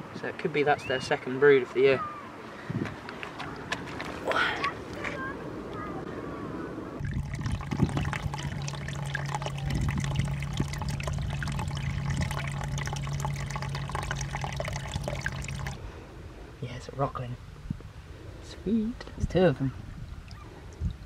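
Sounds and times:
steady low hum: 0:06.8 - 0:16.6
seawater trickling and sloshing: 0:07.0 - 0:15.8.

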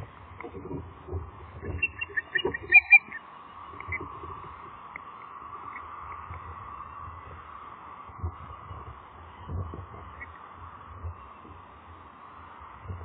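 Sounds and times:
steady background hiss: 0:00.0 - 0:13.0
osprey chirping: 0:01.5 - 0:04.4.

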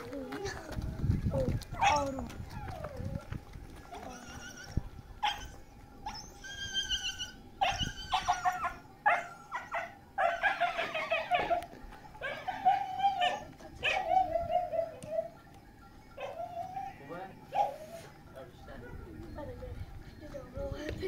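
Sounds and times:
dog whimpering and yelping: 0:03.9 - 0:15.4, 0:16.2 - 0:18.2.

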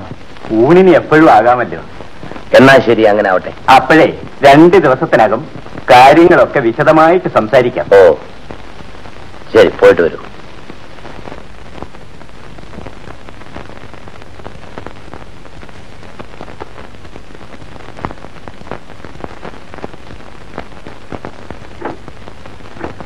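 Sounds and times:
crackles and clicks: 0:00.0 - 0:23.0
steady film hiss: 0:00.0 - 0:23.0.

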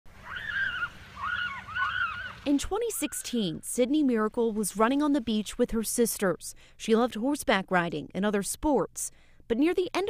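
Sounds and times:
gulls calling: 0:00.1 - 0:03.6.

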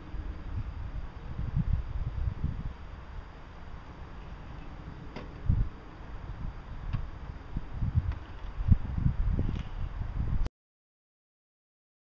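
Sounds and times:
wind on microphone: 0:00.0 - 0:10.5.

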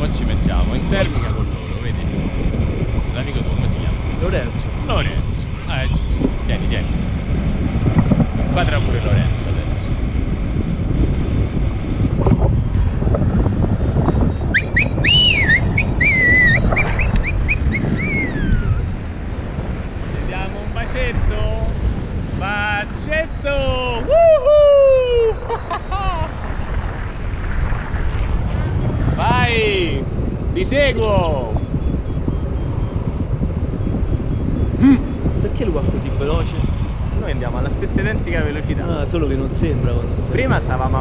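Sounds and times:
wind rushing over microphone: 0:00.0 - 0:41.0
high sliding calls: 0:14.5 - 0:18.8.

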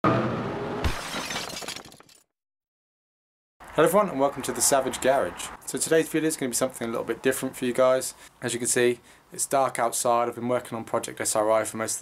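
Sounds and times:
glass shattering: 0:00.8 - 0:02.3.

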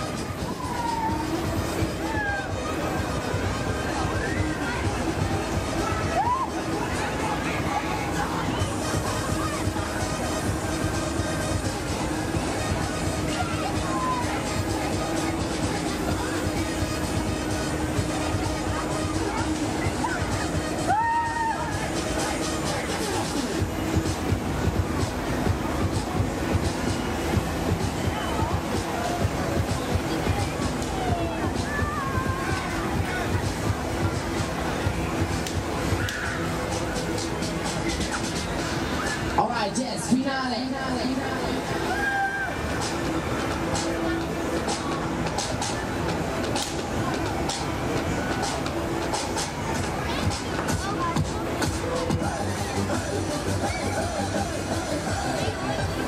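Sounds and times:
fairground ride mechanical rumble: 0:00.0 - 0:56.0
loud fairground music: 0:00.0 - 0:56.0
voices: 0:00.0 - 0:56.0.

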